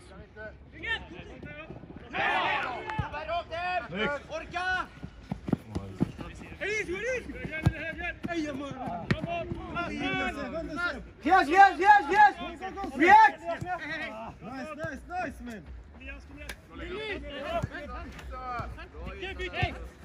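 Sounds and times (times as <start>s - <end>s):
players shouting: 2.0s - 5.0s, 5.8s - 15.4s
ball being kicked: 7.4s - 9.6s.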